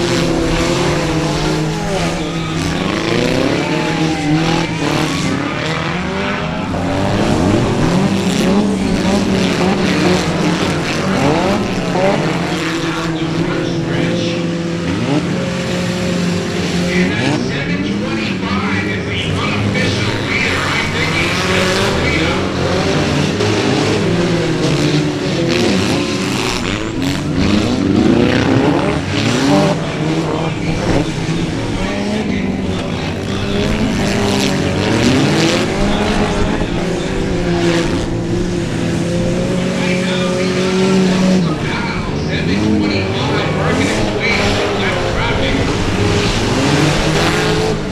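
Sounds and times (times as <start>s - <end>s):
racing car engines revving: 0.0s - 47.9s.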